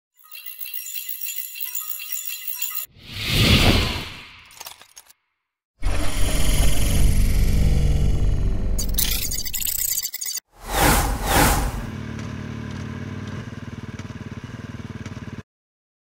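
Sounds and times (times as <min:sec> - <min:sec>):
high tinkling chimes: 0:00.2 - 0:02.9.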